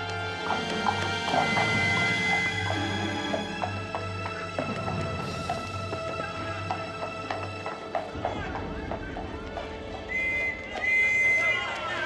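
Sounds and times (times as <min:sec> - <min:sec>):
dramatic background music: 0:00.0 - 0:12.0
hooves clip-clopping on cobblestones: 0:00.0 - 0:12.0
horse whinnying: 0:00.4 - 0:04.8.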